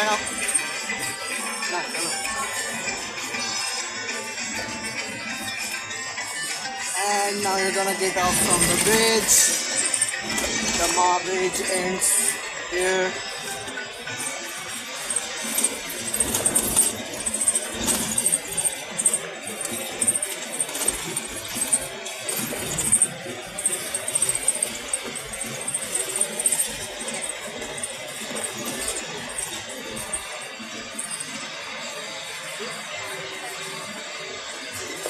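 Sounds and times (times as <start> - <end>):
light rattling and jingling: 7.0 - 33.0.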